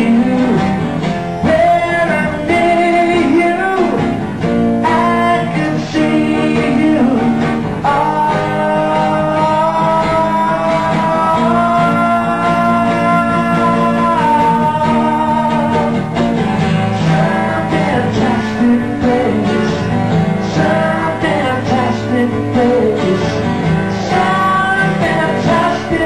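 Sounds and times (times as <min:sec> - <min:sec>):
acoustic guitars playing: 0:00.0 - 0:26.0
man singing: 0:00.0 - 0:26.0.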